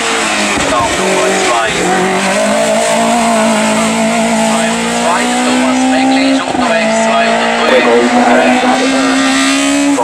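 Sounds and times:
race car engine accelerating: 0.0 - 10.0.

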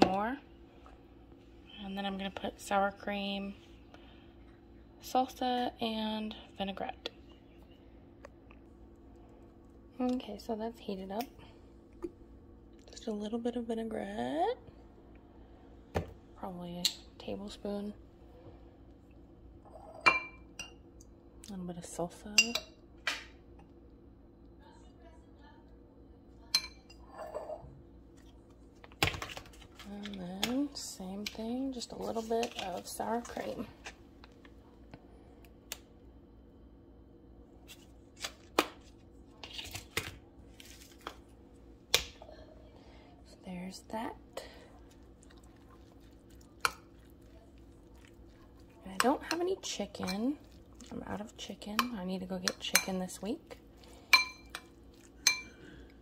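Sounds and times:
spoon stirring squishy food: 44.2 - 56.0
spoon clinking on dish: 54.1 - 55.6.

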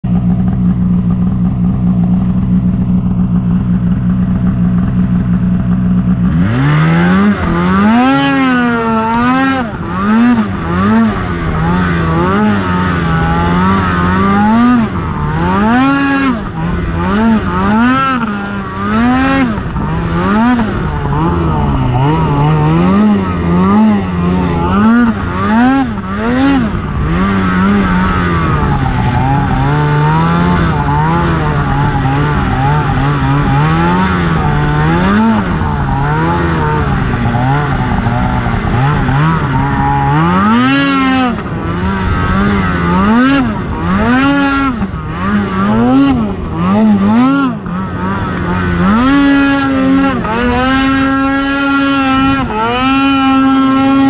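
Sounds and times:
snowmobile engine revving: 0.1 - 54.0.

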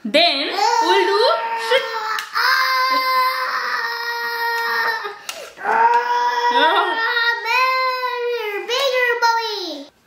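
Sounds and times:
child holding high aaah: 0.6 - 8.6.

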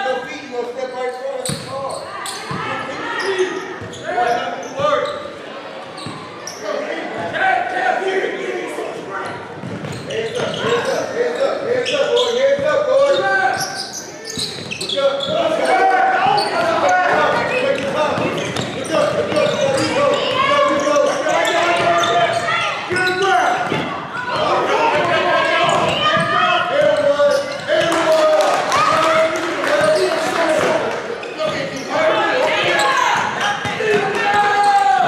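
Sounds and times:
people shouting in a gym: 1.7 - 35.0
basketball bouncing on wooden floor: 16.6 - 19.9.

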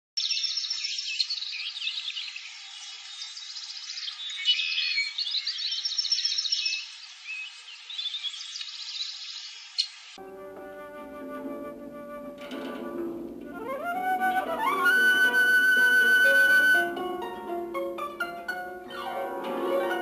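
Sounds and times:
small birds chirping and trilling: 0.2 - 10.2.

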